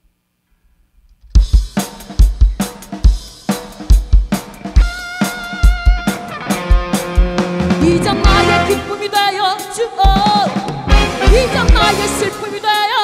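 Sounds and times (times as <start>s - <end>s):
drum kit beat: 1.2s - 13.0s
electric guitar: 4.3s - 12.8s
bass guitar: 4.5s - 9.1s, 10.7s - 12.4s.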